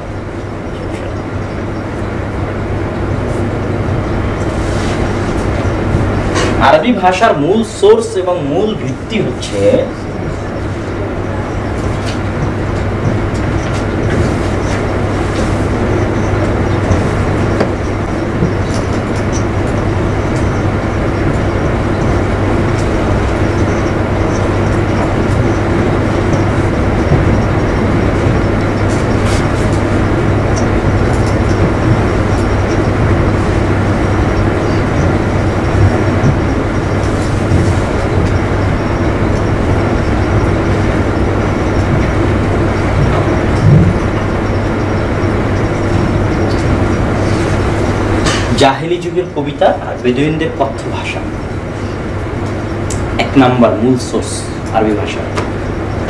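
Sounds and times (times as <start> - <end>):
constant low hum: 0.0 - 56.0
loud steady rumbling: 0.0 - 56.0.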